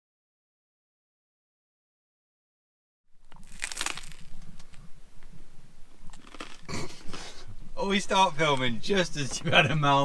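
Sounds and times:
low steady hum: 0:03.1 - 0:10.0
crackles and clicks: 0:03.2 - 0:07.2
chewing and wet mouth sounds: 0:03.3 - 0:04.8, 0:06.0 - 0:07.3.

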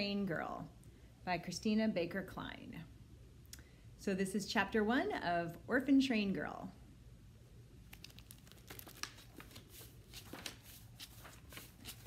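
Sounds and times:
book pages turning: 0:07.8 - 0:12.0.

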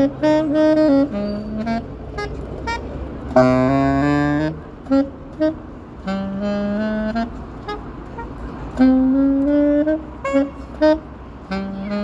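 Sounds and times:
saxophone duet: 0:00.0 - 0:12.0.

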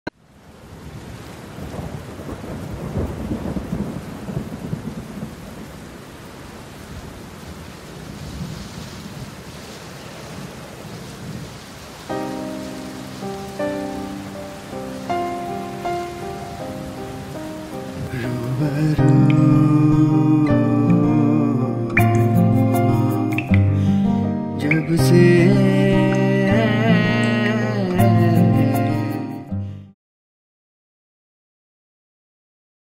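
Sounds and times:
steady rain: 0:00.1 - 0:29.3
rolling thunder: 0:00.8 - 0:06.0, 0:06.9 - 0:19.3
soft instrumental music: 0:12.1 - 0:29.9.

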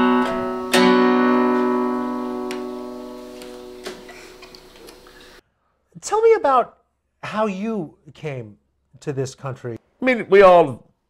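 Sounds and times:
acoustic guitar chord ringing: 0:00.0 - 0:04.5.

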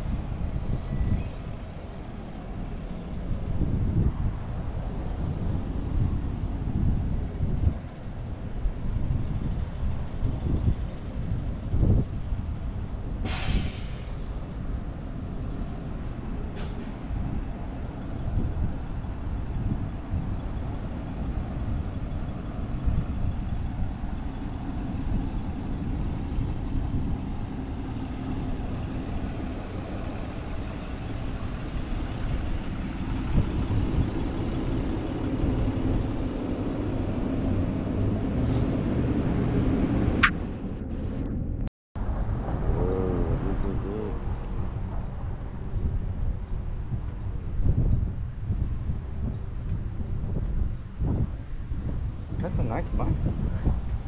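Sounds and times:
bus engine passing: 0:00.0 - 0:54.0
road traffic rumble: 0:00.0 - 0:54.0
air brakes hissing: 0:13.2 - 0:14.6, 0:38.2 - 0:38.8.

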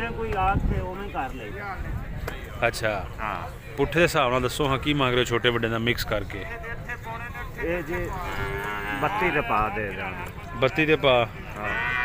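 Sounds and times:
buffalo calf bellowing: 0:08.0 - 0:09.7, 0:11.5 - 0:12.0.

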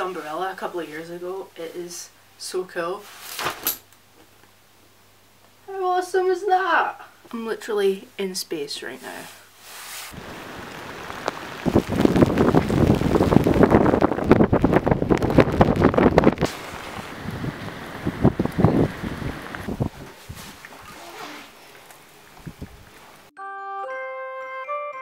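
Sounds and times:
wind: 0:09.0 - 0:23.3
heavy rain: 0:10.1 - 0:20.0
light music with bell-like notes: 0:23.4 - 0:25.0.

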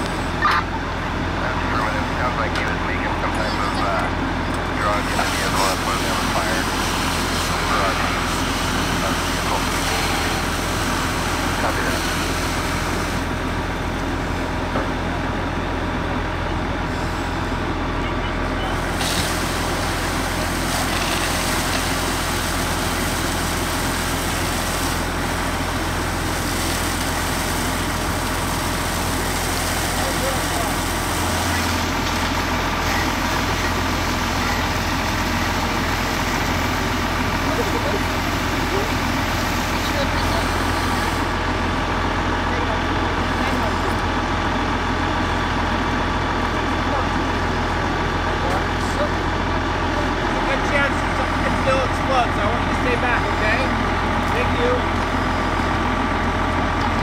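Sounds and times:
fire engine pump running: 0:00.0 - 0:57.0
water stream hissing on metal: 0:04.9 - 0:13.4, 0:18.8 - 0:41.4.

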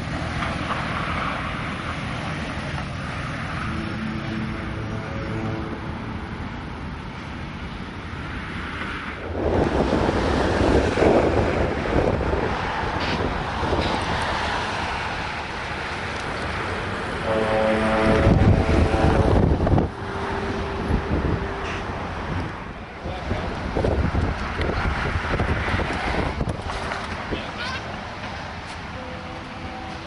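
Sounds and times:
steady engine drone: 0:00.0 - 0:30.0
wind buffeting microphone: 0:06.6 - 0:30.0.

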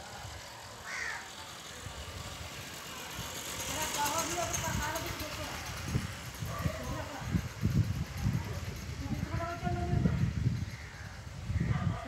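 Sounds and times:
indistinct voices talking: 0:01.2 - 0:12.0.

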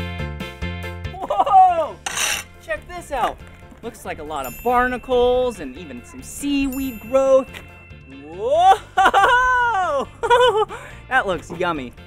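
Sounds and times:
scraper rasping on boat hull: 0:02.0 - 0:02.5.

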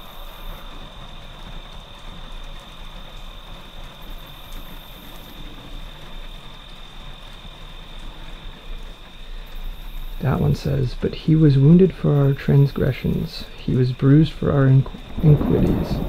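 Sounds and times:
even hiss: 0:00.0 - 0:16.0.

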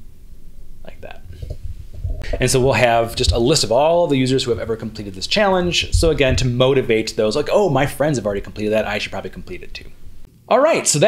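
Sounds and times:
steady low hum: 0:00.0 - 0:10.5
breathy mouth sounds: 0:01.2 - 0:02.5.

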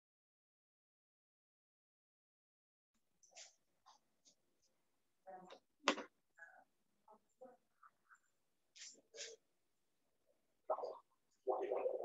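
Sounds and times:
clipped fragments of person's voice: 0:10.7 - 0:12.0.

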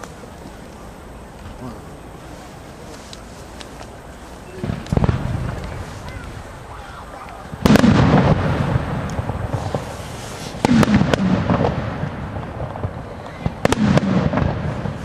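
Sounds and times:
fireworks bangs: 0:00.0 - 0:15.0
rolling echo: 0:00.0 - 0:15.0.

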